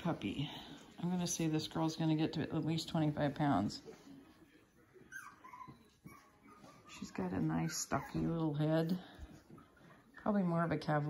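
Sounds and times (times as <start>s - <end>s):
puppy whimpering: 3.9s - 10.2s.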